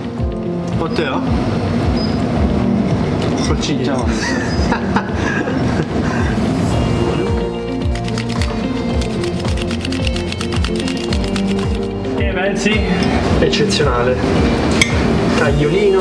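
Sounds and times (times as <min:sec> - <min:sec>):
background music with steady beat: 0:00.0 - 0:16.0.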